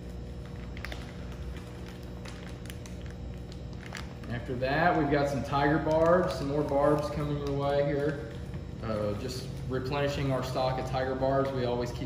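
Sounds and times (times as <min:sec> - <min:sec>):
low room hum: 0:00.0 - 0:12.0
plastic bags crinkling: 0:00.0 - 0:12.0.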